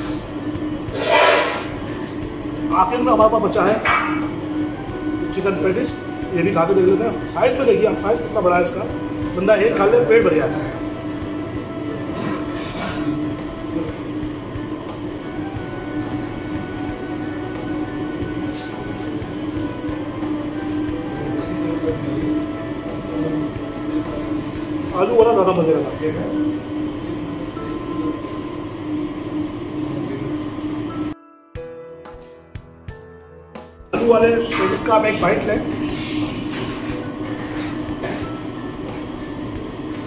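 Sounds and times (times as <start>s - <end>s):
low machine hum: 0.0s - 31.2s, 34.0s - 40.0s.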